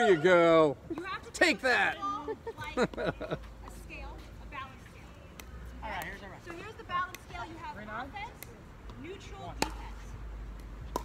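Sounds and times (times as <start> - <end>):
pickleball paddle pops: 9.6 - 9.9, 10.6 - 11.0.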